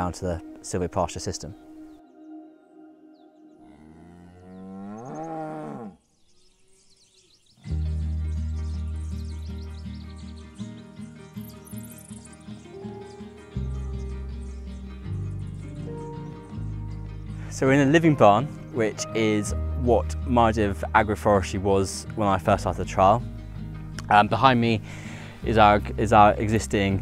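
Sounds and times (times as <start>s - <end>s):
cow mooing: 3.6s - 6.0s.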